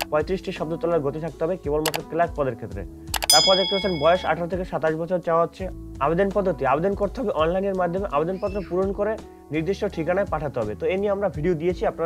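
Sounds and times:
click: 1.8 - 2.0, 3.1 - 3.3
bright bell-like ding: 3.3 - 4.5.

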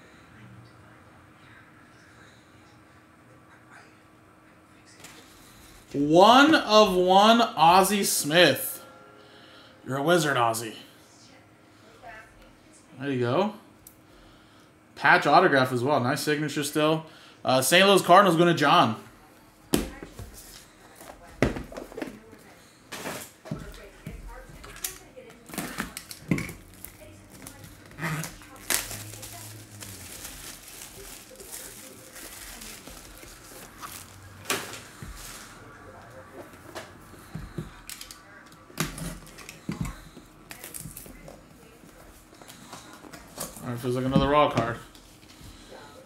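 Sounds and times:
cellophane crinkling: 24.7 - 35.6.

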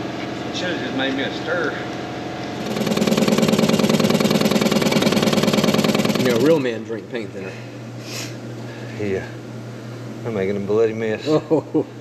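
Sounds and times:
motor-driven machine running: 0.6 - 10.8.

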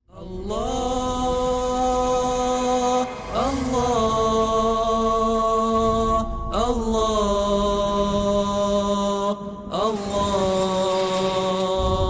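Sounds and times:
vocal chant in long held notes: 0.1 - 12.0.

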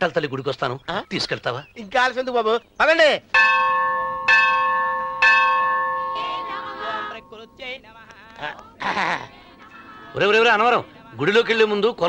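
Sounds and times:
temple bell ringing: 3.4 - 7.8.

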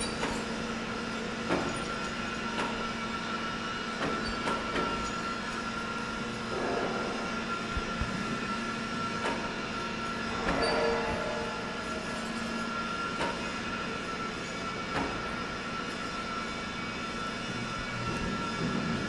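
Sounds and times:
machinery high whine: 0.0 - 19.0
machinery low hum: 0.1 - 19.0.

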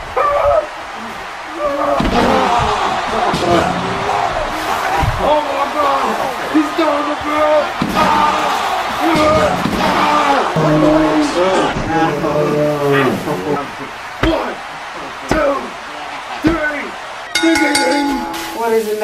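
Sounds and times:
voices: 0.0 - 19.0.

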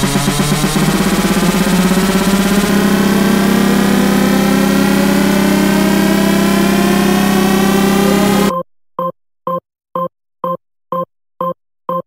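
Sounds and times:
low drone: 0.0 - 8.5
synth riser gliding upward: 0.0 - 8.5.

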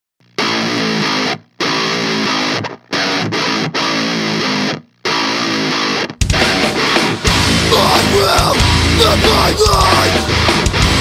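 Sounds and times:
distorted electric guitar riff: 0.2 - 11.0.

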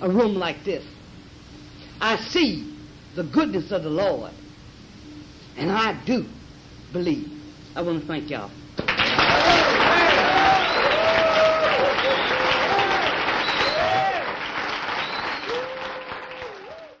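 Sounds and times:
audience applauding: 8.8 - 17.0
voices cheering: 9.1 - 17.0.

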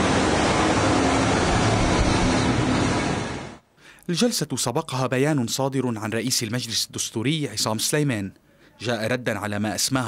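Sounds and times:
loud rushing noise: 0.0 - 3.6
low hum: 0.0 - 3.6.

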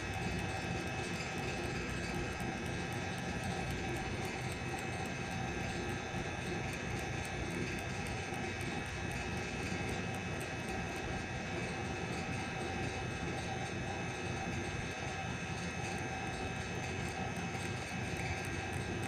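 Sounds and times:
machine hum with held tones: 0.0 - 19.0.

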